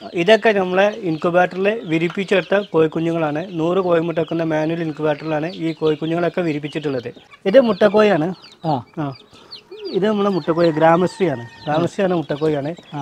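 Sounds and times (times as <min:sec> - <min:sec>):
chicks peeping: 0:00.0 - 0:13.0
hens clucking: 0:00.0 - 0:13.0.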